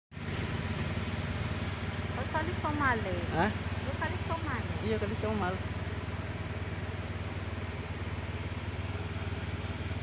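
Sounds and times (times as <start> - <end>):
engine idling: 0.1 - 10.0.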